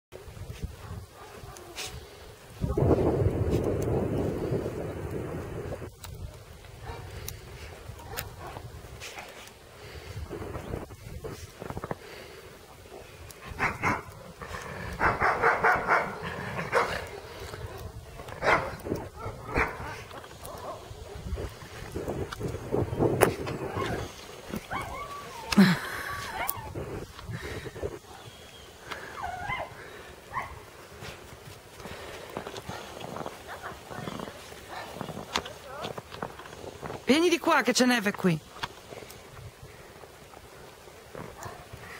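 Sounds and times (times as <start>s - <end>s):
wind buffeting microphone: 0.2s - 37.2s, 38.5s - 41.9s
dogs barking and yelping: 13.0s - 21.6s, 23.6s - 26.8s, 29.0s - 30.7s.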